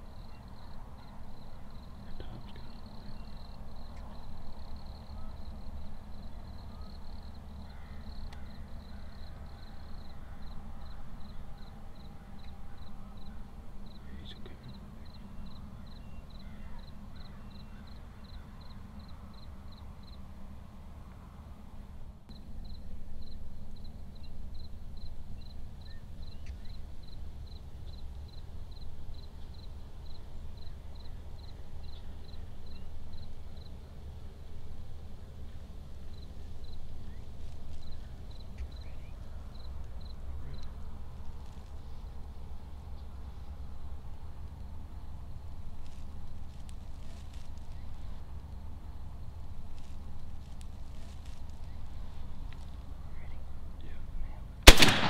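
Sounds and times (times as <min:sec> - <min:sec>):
low steady rumble: 0:00.0 - 0:55.0.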